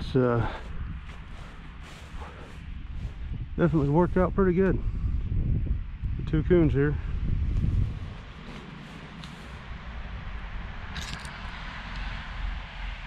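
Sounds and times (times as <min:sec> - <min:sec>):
footsteps rustling through brush: 0:00.0 - 0:04.4, 0:07.4 - 0:10.1
wind rumble on microphone: 0:00.0 - 0:13.0.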